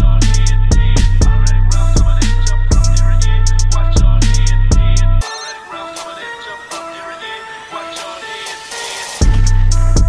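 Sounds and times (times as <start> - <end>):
hi-hat ticks: 0.0 - 5.2, 8.0 - 10.0
trap beat bass and drums: 0.0 - 5.3, 8.0 - 10.0
melody of short notes: 1.4 - 7.0.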